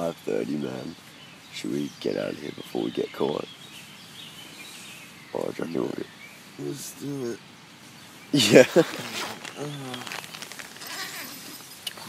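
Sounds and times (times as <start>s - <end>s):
tent fabric rustling: 7.9s - 11.9s
faint voice: 9.6s - 10.1s.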